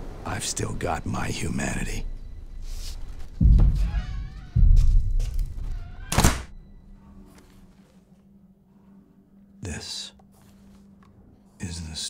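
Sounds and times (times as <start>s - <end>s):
quiet low hum: 0.0s - 12.0s
heavy low thud: 3.3s - 6.6s.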